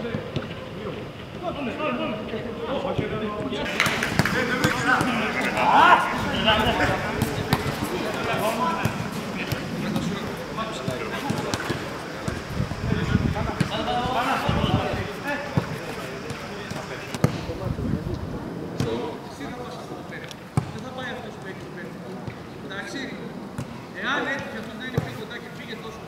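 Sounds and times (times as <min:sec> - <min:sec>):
men chatting: 0:00.0 - 0:26.0
boots kicking football: 0:03.7 - 0:12.5, 0:15.5 - 0:17.5.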